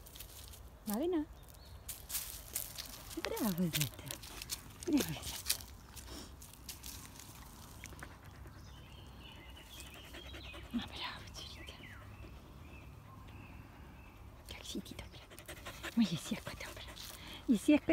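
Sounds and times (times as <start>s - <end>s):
faint outdoor background: 0.0s - 17.9s.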